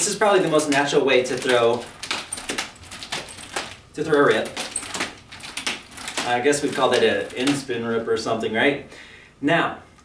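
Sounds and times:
nunchaku chain rattling: 0.0s - 8.0s.

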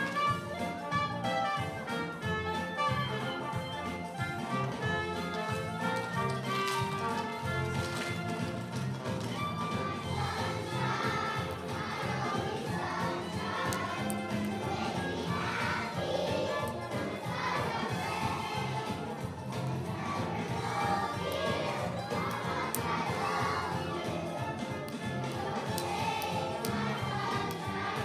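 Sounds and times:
children's choir singing: 0.0s - 28.0s.

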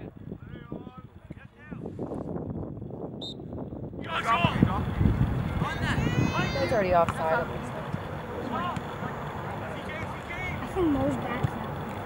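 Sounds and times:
low wind rumble on microphone: 0.0s - 7.7s.

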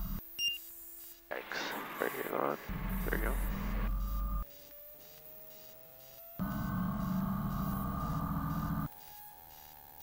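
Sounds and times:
aircraft engine drone with whine: 5.6s - 9.5s.

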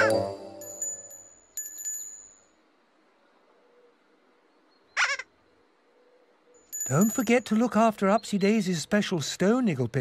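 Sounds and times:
chime ringing: 0.0s - 2.6s, 6.6s - 7.8s.

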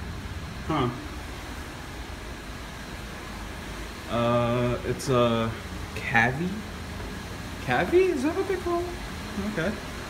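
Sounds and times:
ventilation hiss and rumble: 0.0s - 10.0s.

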